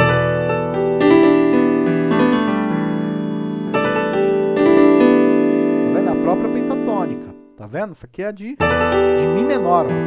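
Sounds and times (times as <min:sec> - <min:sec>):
electronic piano chord: 0:00.0 - 0:07.6, 0:08.6 - 0:10.0
man's voice: 0:05.9 - 0:10.0.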